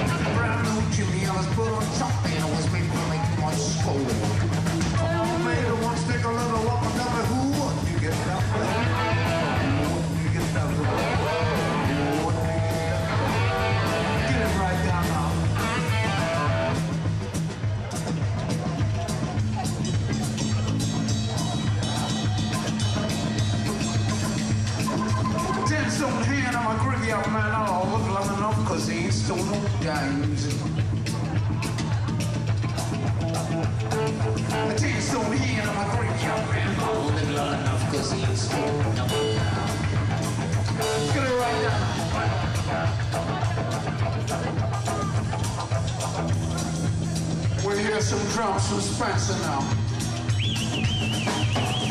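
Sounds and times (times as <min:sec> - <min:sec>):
bass: 0:00.0 - 0:51.9
drum beat: 0:00.0 - 0:51.9
rock band playing: 0:00.0 - 0:51.9
lead guitar bending notes: 0:08.4 - 0:17.0.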